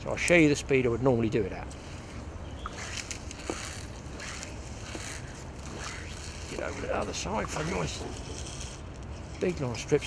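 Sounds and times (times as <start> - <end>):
fly line swishing through guides: 1.8 - 9.5.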